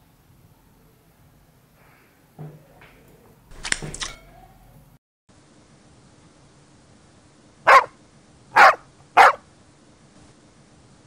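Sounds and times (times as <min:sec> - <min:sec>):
dog barking: 0:07.7 - 0:08.0, 0:08.6 - 0:09.4.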